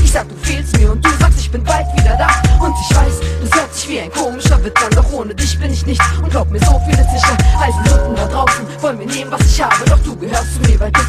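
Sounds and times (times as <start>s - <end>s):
hip-hop beat with deep bass: 0.0s - 11.0s
rapped vocals: 0.0s - 11.0s.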